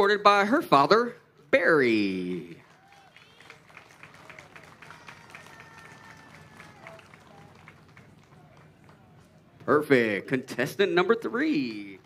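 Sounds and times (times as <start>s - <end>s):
murmur of distant voices: 1.2s - 12.0s.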